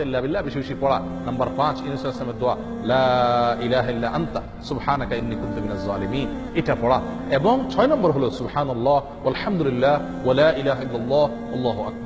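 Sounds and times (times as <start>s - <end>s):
man chanting melodically: 0.0s - 12.0s
steady low drone: 0.0s - 12.0s.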